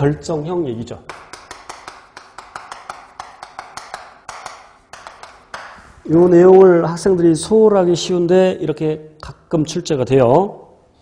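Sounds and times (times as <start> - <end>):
chalk tapping and scratching: 1.1 - 6.0.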